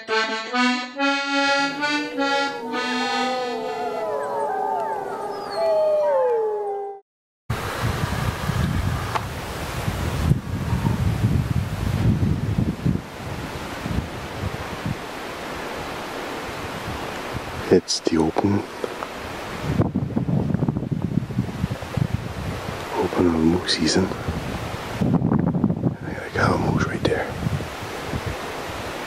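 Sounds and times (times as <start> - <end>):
accordion music: 0.0 - 4.4
wolves howling: 2.3 - 7.0
wind buffeting microphone: 7.5 - 17.7, 19.1 - 29.0.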